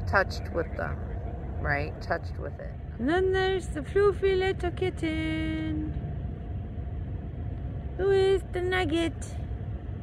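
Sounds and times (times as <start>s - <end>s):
outdoor low rumble: 0.0s - 10.0s.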